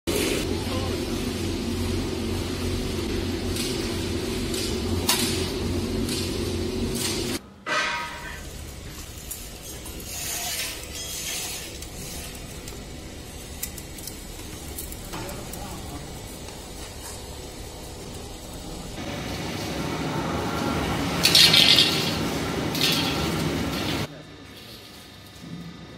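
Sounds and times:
machine motor hum: 0.1s - 7.4s, 8.6s - 24.1s.

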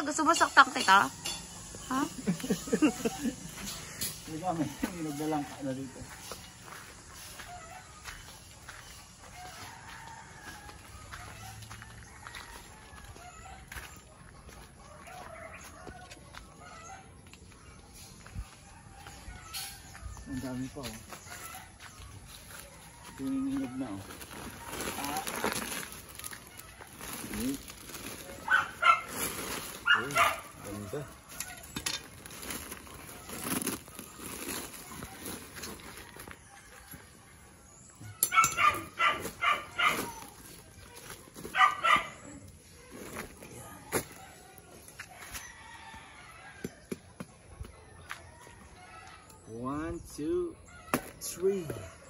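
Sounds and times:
dog barking: 28.4s - 29.2s, 29.8s - 30.6s, 38.3s - 40.2s, 41.5s - 42.4s.

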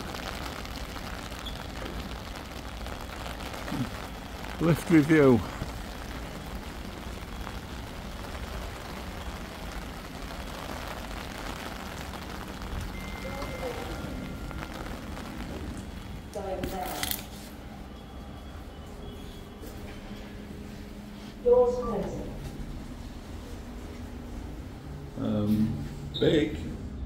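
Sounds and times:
steady rain: 0.0s - 27.0s
lift beep: 12.9s - 14.8s.

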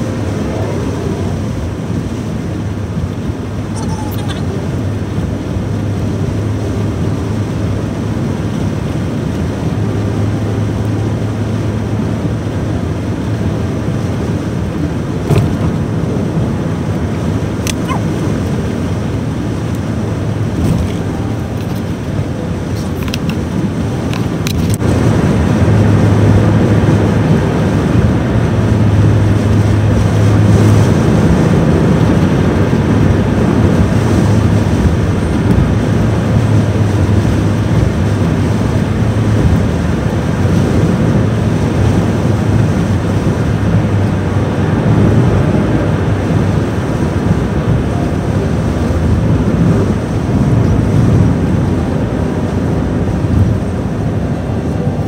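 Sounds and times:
low drone: 0.0s - 55.0s
tyres on snowy road: 0.0s - 55.0s
wind rushing against car: 0.0s - 55.0s.

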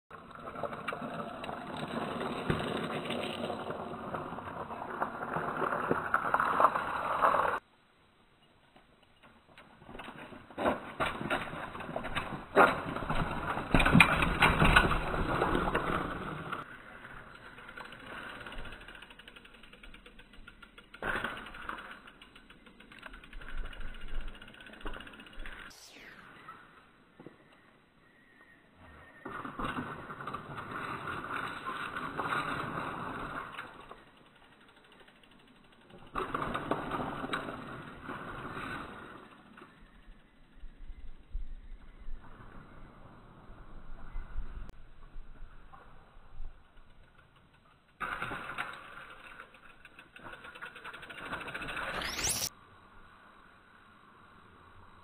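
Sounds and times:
bike tyres crunching over gravel: 0.1s - 7.6s, 9.6s - 27.6s
bike tyres on rocky trail: 0.1s - 7.7s, 8.4s - 52.6s
scattered clicks: 13.7s - 26.1s, 46.7s - 52.5s.

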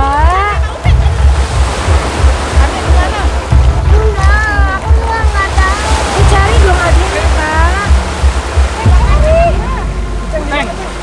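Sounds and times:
background music beat: 0.0s - 11.0s
small waves washing on shore: 0.0s - 11.0s.

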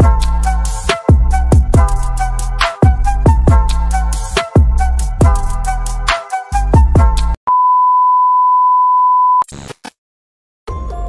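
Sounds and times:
music: 0.0s - 7.4s, 10.7s - 11.0s.

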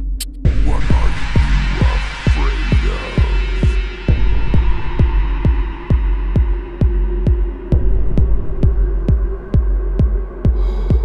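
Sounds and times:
hi-hat ticks: 0.0s - 0.4s
kick drum: 0.0s - 11.0s
sub-bass drone: 0.0s - 11.0s.

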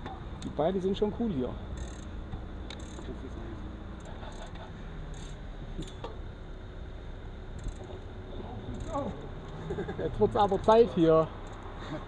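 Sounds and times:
low street rumble: 0.0s - 12.0s.

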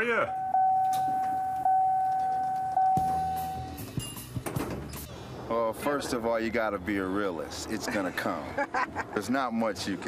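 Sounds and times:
chime tone: 0.3s - 4.3s
elevator doors sliding shut: 4.3s - 5.1s.

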